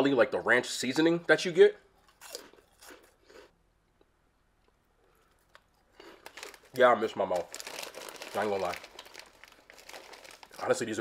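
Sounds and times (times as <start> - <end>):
faint crunchy chewing: 1.9 - 10.9.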